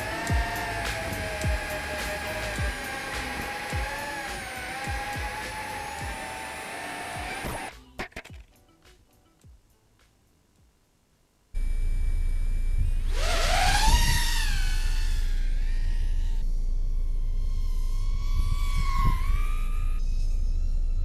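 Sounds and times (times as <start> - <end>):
quadcopter motors whining: 0.0 - 7.7, 11.6 - 21.0.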